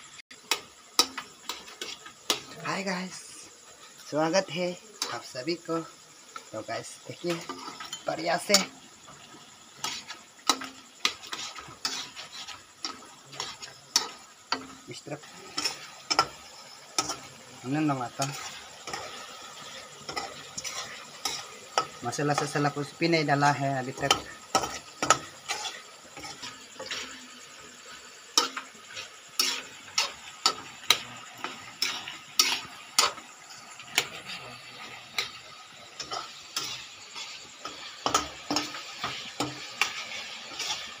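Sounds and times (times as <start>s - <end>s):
oil sizzling: 0.0s - 41.0s
steel spatula scraping a wok: 0.4s - 41.0s.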